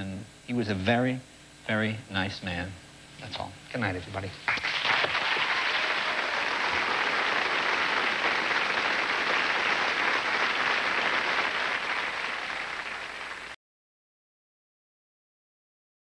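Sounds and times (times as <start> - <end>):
audience applauding: 4.5 - 13.6.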